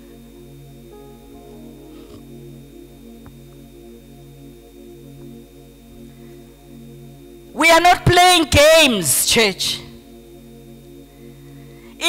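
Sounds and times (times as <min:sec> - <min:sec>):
electrical hum: 0:00.0 - 0:12.0
soft keyboard chords: 0:00.0 - 0:12.0
thin high whine: 0:00.0 - 0:12.0
person preaching: 0:07.6 - 0:10.0.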